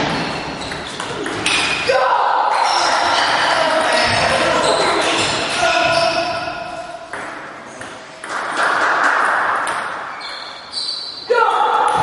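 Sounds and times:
voices in a hall: 0:01.8 - 0:12.0.

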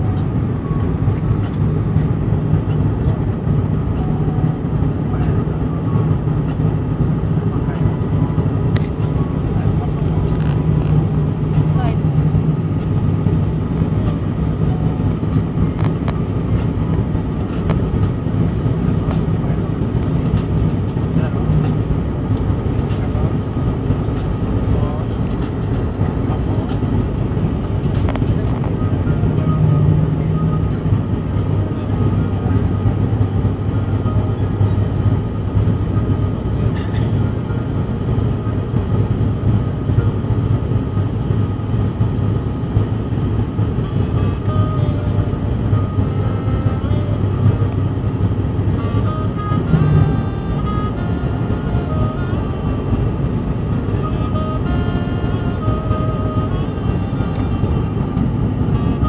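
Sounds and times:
deep low hum: 0:00.0 - 0:59.0
propeller and engine drone: 0:00.0 - 0:59.0.

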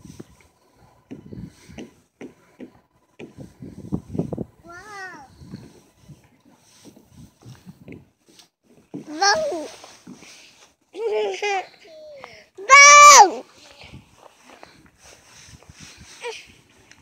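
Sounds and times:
person calling out: 0:12.6 - 0:13.4.

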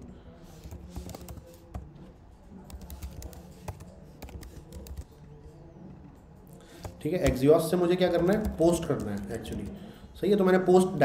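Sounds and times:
computer keyboard clicks: 0:00.6 - 0:01.8, 0:02.7 - 0:05.2, 0:06.7 - 0:07.4, 0:08.2 - 0:09.8.

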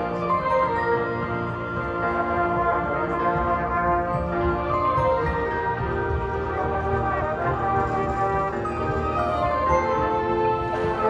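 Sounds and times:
marching band playing chords: 0:00.0 - 0:11.0.

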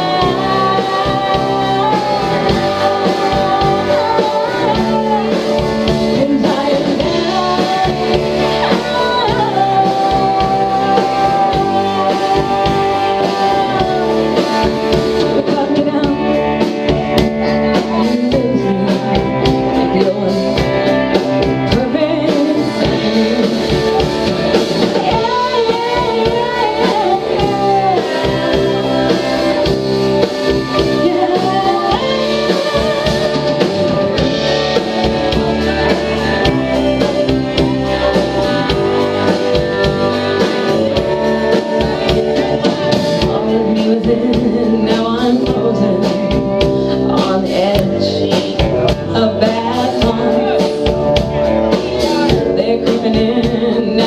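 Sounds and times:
live rock band playing: 0:00.0 - 0:54.0
woman singing: 0:00.0 - 0:54.0.

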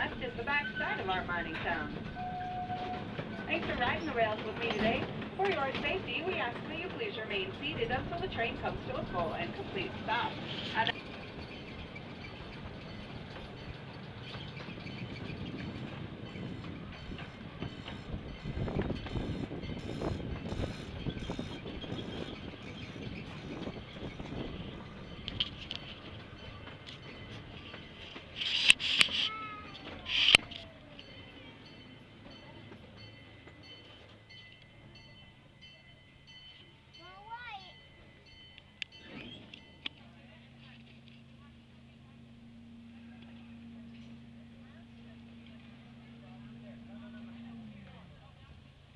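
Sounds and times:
miniature train rolling on rails: 0:00.0 - 0:48.9.

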